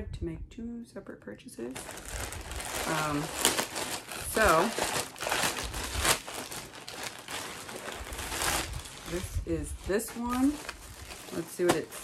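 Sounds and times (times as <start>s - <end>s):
plastic packaging crinkling: 1.7s - 12.0s.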